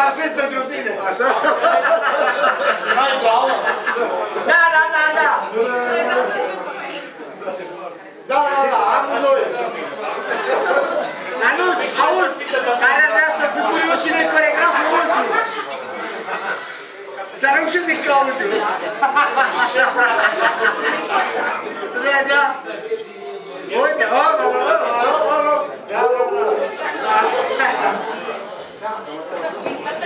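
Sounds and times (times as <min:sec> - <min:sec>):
overlapping chatter: 0:00.0 - 0:30.0.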